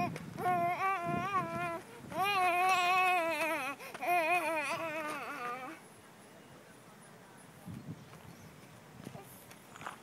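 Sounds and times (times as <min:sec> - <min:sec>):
boy chanting: 0:00.4 - 0:05.8.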